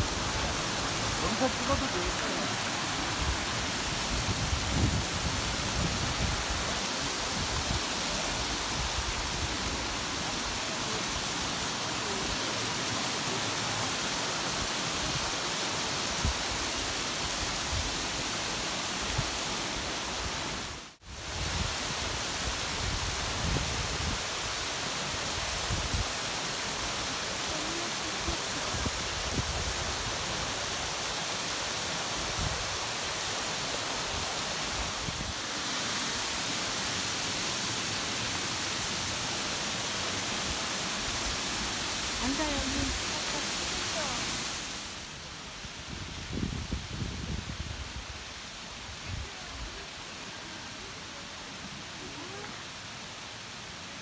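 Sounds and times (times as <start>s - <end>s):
stream rushing over rocks: 0.0s - 54.0s.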